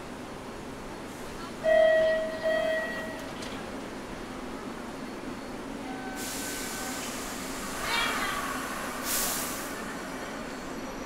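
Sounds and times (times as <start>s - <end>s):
train brake squeal: 5.8s - 7.1s
air hissing from train: 6.0s - 11.0s.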